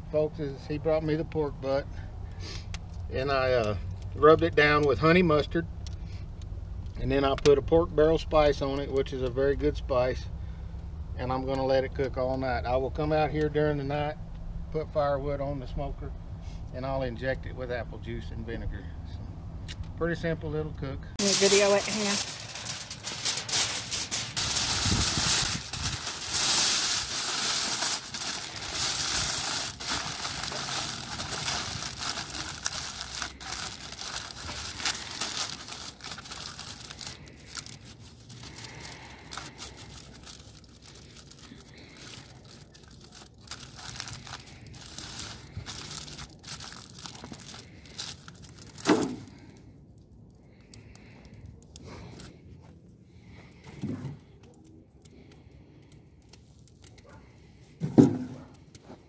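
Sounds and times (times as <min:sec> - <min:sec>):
aluminum foil crinkling: 0:21.2 - 0:52.3, 0:54.4 - 0:57.2.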